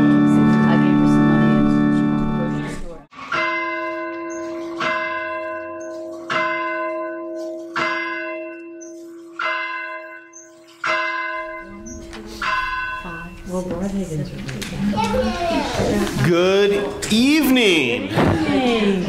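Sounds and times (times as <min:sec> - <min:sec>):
church bell tolling: 0:00.0 - 0:14.5.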